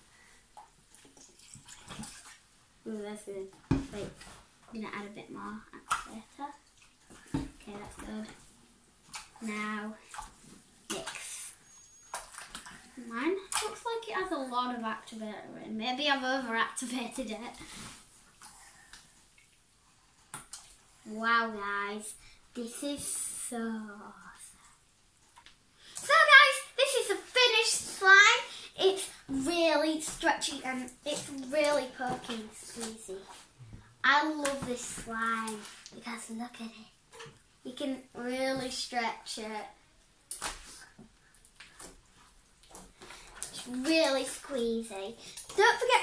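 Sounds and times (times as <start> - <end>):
slime squelch: 0.0 - 46.0.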